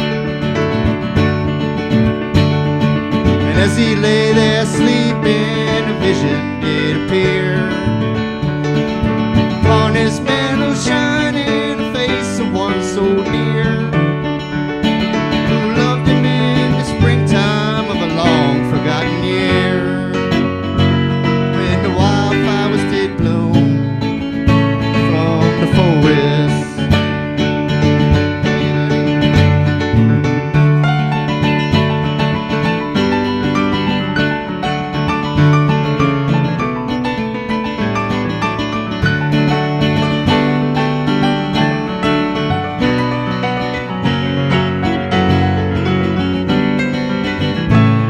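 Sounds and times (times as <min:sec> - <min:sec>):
acoustic guitar: 0:00.0 - 0:48.0
electric keyboard: 0:00.0 - 0:48.0.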